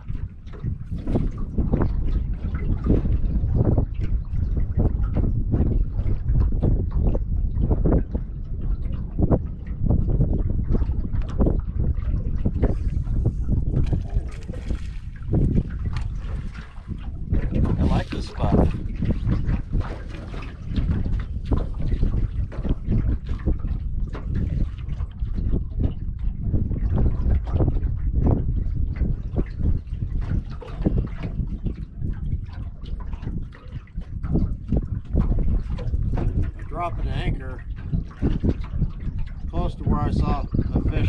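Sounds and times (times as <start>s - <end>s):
waves slapping boat hull: 0.0s - 41.0s
wind buffeting microphone: 0.0s - 41.0s.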